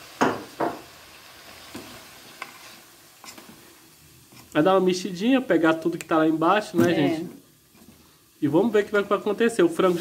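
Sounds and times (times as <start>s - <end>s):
spoon scraping pot: 2.4s - 3.6s.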